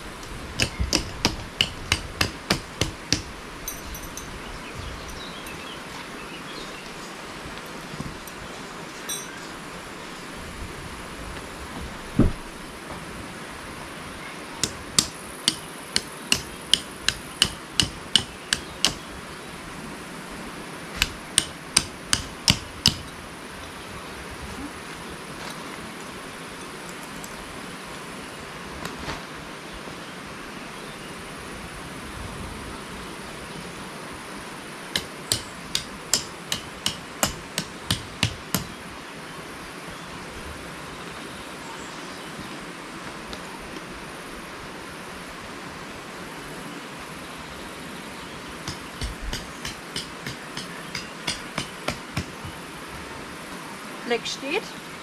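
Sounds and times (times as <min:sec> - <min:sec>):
hammer striking metal tent pegs: 0:00.6 - 0:04.3, 0:14.6 - 0:19.1, 0:21.0 - 0:23.1, 0:35.0 - 0:38.8, 0:48.6 - 0:52.6.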